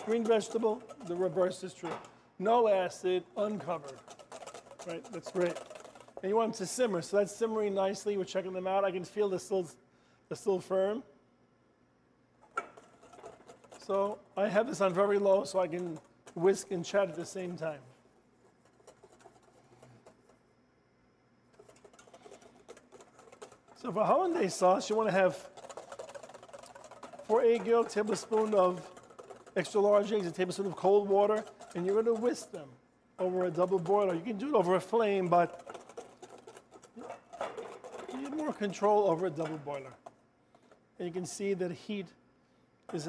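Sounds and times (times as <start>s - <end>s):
whisk scraping metal bowl: 0.0s - 8.1s, 12.5s - 20.4s, 21.6s - 41.1s.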